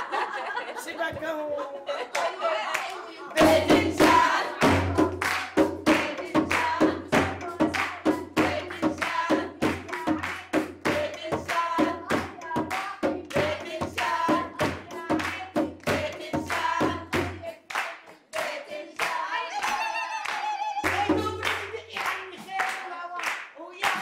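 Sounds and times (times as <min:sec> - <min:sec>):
rhythmic hand clapping: 0:02.1 - 0:24.0
women singing folk song: 0:02.2 - 0:24.0
frame drum beat: 0:03.4 - 0:17.5, 0:20.8 - 0:21.9.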